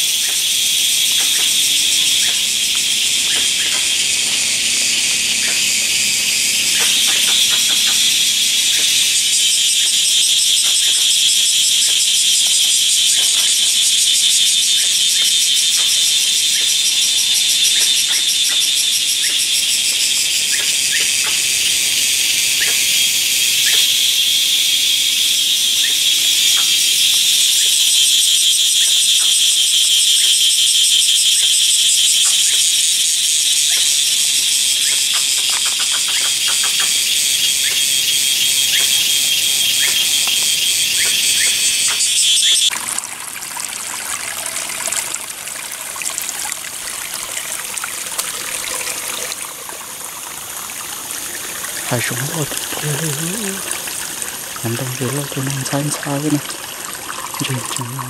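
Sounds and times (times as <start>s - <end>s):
stream trickling over rocks: 0.0s - 24.3s, 26.3s - 58.0s
cicadas chorus: 0.0s - 58.0s.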